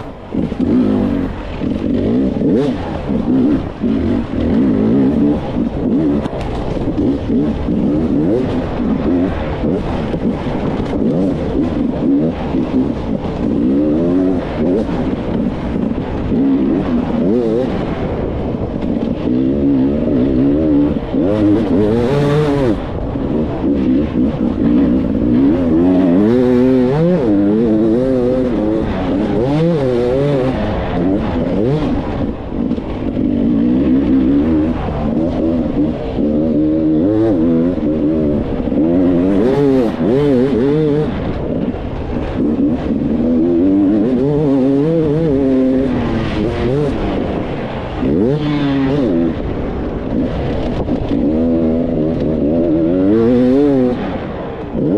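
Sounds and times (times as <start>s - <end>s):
motorcycle engine revving: 0.0s - 54.9s.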